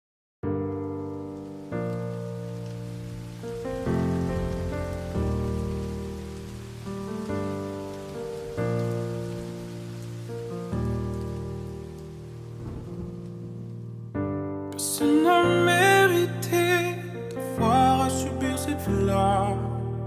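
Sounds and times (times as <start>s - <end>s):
piano playing slow chords: 0.4s - 20.0s
faint steady hiss: 0.6s - 20.0s.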